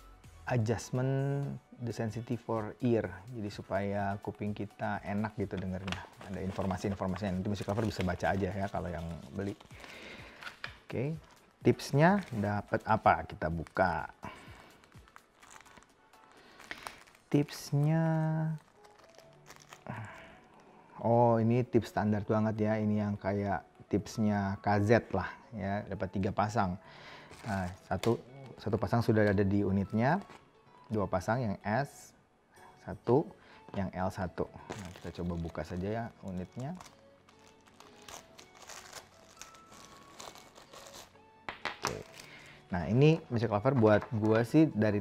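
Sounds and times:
faint background music: 0.0 - 45.0
plastic bag crinkling: 5.6 - 12.6, 14.4 - 20.6, 27.2 - 28.2, 34.6 - 41.2.

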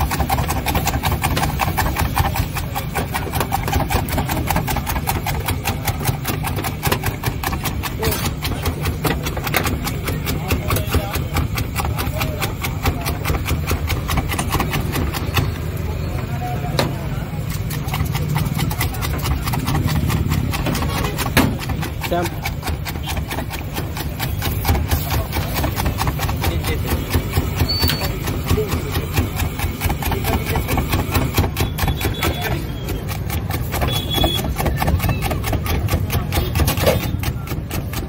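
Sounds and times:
gas burners rumbling: 0.0 - 38.0
rapid crackling in pans: 0.0 - 38.0.

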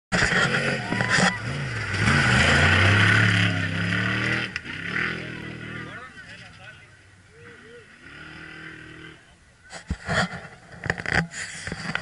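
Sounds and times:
race vehicle engine passing by: 0.2 - 9.4.

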